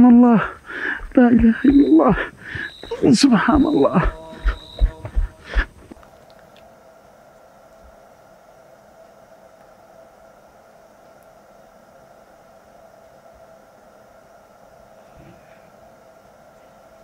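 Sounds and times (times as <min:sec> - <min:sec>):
low hum: 0:00.0 - 0:08.2.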